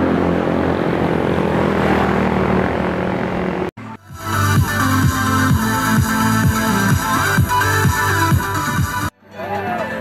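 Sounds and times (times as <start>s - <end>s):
engine drone: 0.0s - 9.1s.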